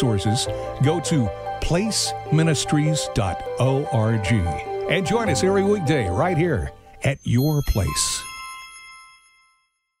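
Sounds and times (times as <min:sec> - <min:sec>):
bright chime ringing: 0:04.9 - 0:10.0.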